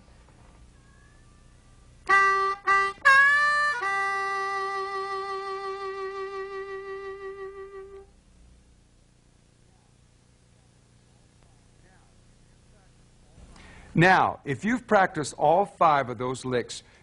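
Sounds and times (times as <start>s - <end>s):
harmonica playing blues: 2.0s - 8.1s.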